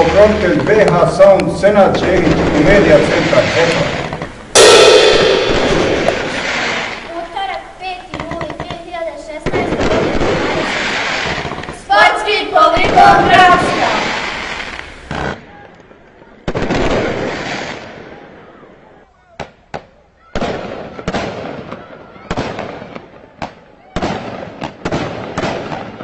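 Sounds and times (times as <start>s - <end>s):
fireworks bangs and bursts: 8.0s - 15.4s, 16.5s - 18.2s, 19.4s - 26.0s.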